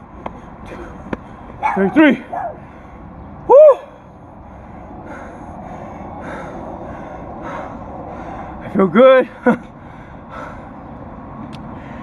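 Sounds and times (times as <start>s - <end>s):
man breathing heavily: 0.3s - 1.6s, 2.2s - 8.8s, 9.6s - 12.0s.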